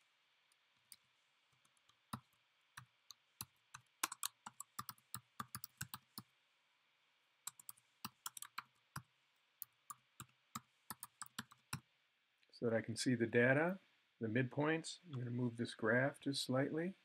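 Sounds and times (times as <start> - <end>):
computer keyboard typing: 2.1 - 6.2, 7.5 - 8.7, 10.9 - 11.8.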